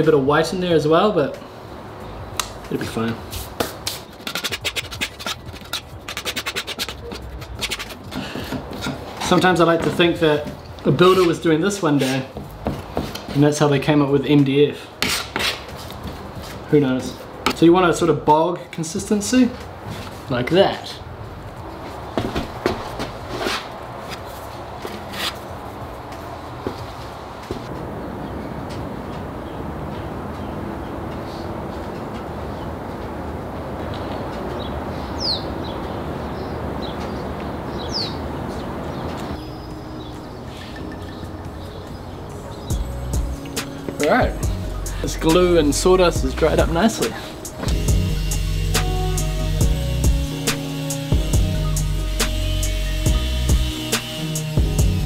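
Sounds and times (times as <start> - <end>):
putty knife scraping paste: 3.9 - 9.4, 15.0 - 15.6
rumbling background noise: 17.0 - 48.8.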